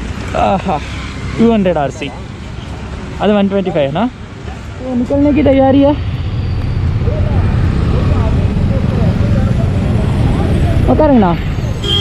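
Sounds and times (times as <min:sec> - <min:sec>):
motorcycle engine rumble: 0:04.1 - 0:11.9.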